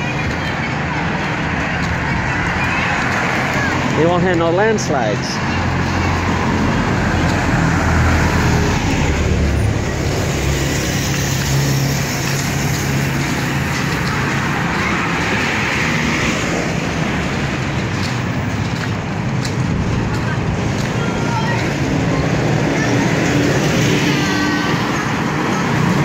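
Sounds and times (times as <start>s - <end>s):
cars passing by: 0.0s - 26.0s.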